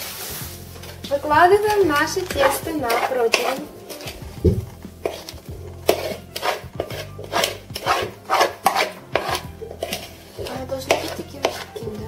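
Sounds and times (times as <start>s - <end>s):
metal spoon scraping dough: 0.8s - 12.0s.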